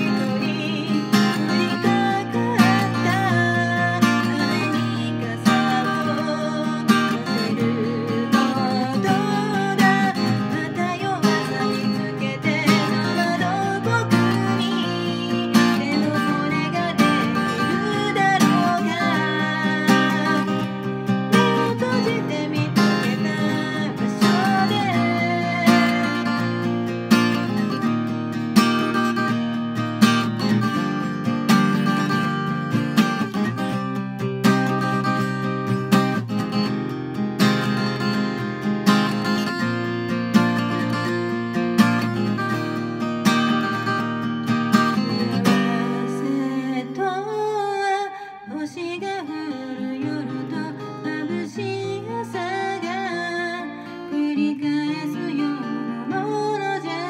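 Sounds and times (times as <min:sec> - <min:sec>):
acoustic guitar strumming chords: 0:00.0 - 0:57.0.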